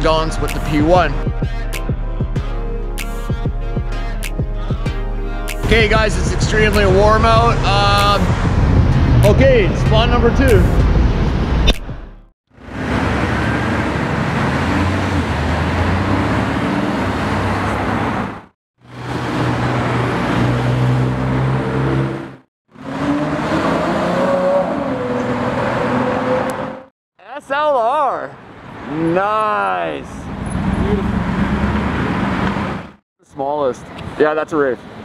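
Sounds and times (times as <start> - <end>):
tyre and traffic noise: 10.8 - 26.9, 28.3 - 35.0
sports cars driving past: 12.6 - 26.8.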